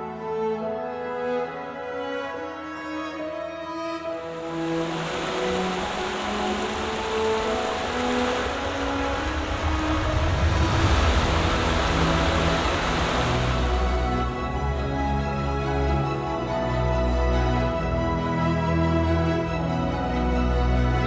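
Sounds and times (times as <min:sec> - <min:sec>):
background music: 0:00.0 - 0:21.0
creek running over stones: 0:04.3 - 0:14.4.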